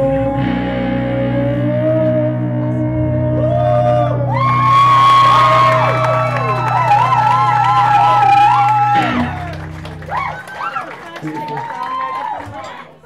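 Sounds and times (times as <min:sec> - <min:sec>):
electric guitar bent notes: 0:00.0 - 0:10.5
live rock band: 0:00.0 - 0:10.8.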